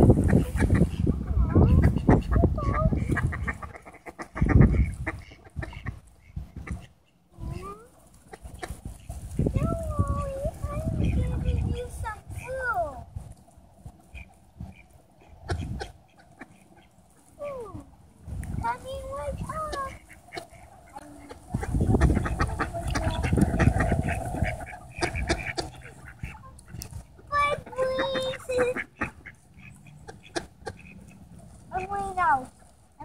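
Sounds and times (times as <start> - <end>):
ducks quacking: 0.0 - 12.7, 13.8 - 17.8, 18.6 - 33.0.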